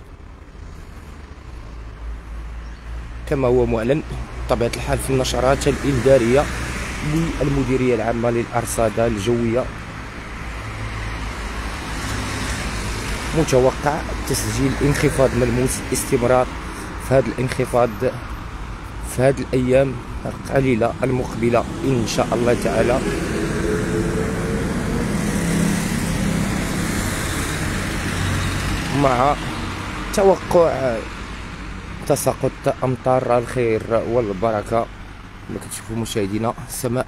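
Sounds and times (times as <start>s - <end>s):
street traffic rumble: 0.0s - 37.0s
vehicle passing with tyre noise: 0.0s - 37.0s.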